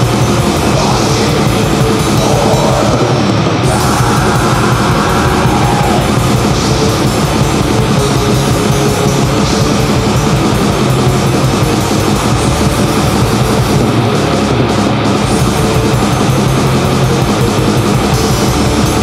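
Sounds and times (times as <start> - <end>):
distorted guitars: 0.0 - 19.0
fast drumming: 0.0 - 19.0.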